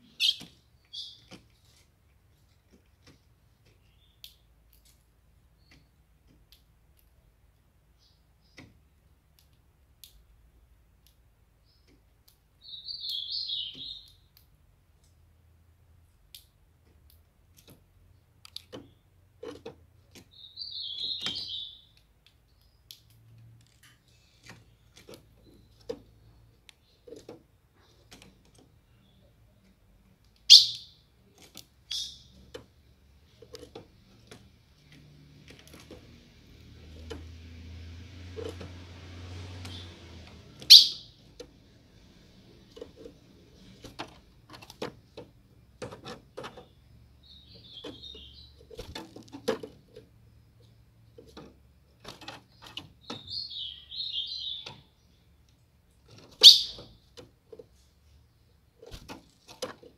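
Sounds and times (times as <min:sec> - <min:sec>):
bird sharp chips: 0:40.5 - 0:41.2, 0:56.3 - 0:56.9
bird chattering: 0:40.7 - 0:41.2, 0:56.4 - 0:56.9.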